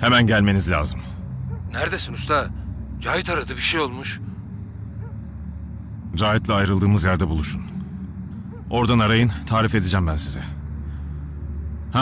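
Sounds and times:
crickets chirring: 0.0s - 12.0s
steady low hum: 0.0s - 12.0s.

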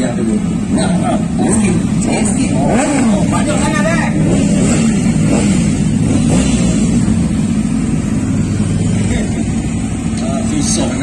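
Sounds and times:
motorcycle engines passing: 0.0s - 11.0s.

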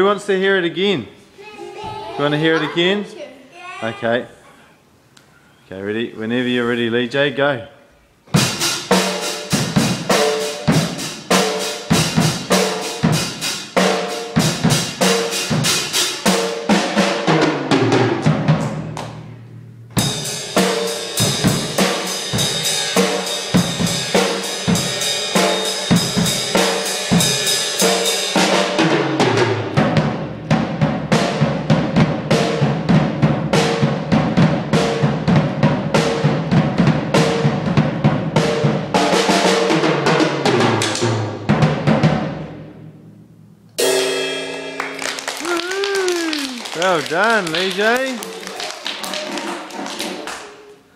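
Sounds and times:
drum kit solo: 8.3s - 48.4s.

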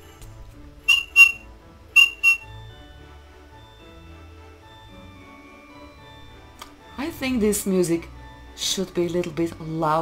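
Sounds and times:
faint christmas background music: 0.0s - 10.0s
short high whistle toots: 0.9s - 1.4s, 2.0s - 2.5s.

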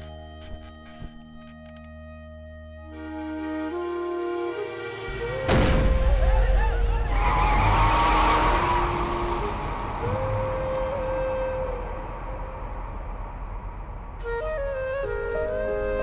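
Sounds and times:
soft sustained music tones: 0.0s - 16.0s
loud noisy burst with screech: 7.1s - 10.4s.

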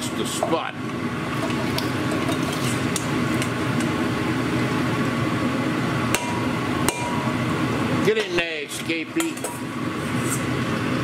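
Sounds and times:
range hood fan running: 0.0s - 11.0s
metal bowl knocking against pot: 6.2s - 7.4s.

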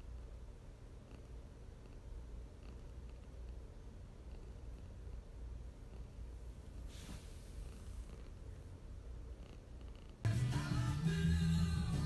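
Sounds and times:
cat purring: 0.9s - 10.3s.

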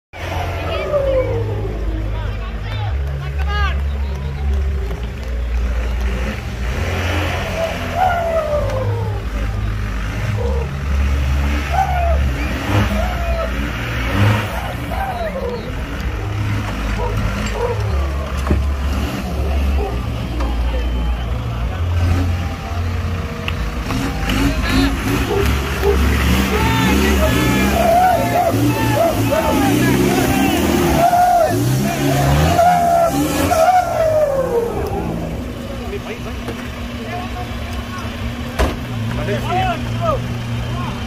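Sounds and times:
off-road engine revving: 0.1s - 41.0s
spectators' voices and shouts: 0.2s - 41.0s.

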